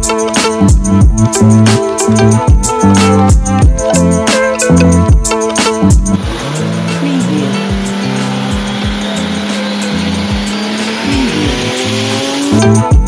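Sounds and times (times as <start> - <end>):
background music with a beat: 0.0 - 13.0
car tyres squealing: 6.1 - 12.8.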